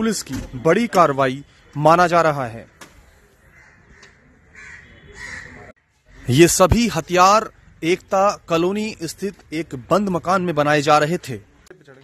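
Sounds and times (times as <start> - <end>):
harsh crow-like bird calls: 2.6 - 6.6.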